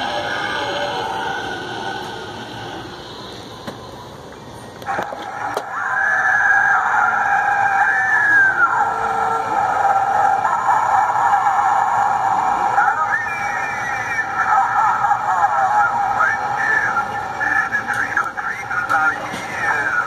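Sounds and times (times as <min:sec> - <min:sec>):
tinny spooky voice from speaker: 0:00.0 - 0:03.5, 0:04.9 - 0:20.0.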